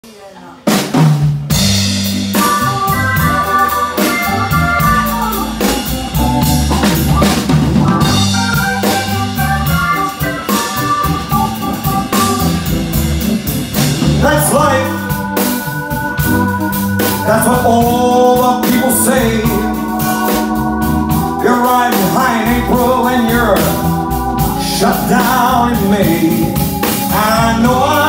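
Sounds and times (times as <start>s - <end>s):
big band playing: 0.0s - 28.0s
drum kit hits: 0.7s - 28.0s.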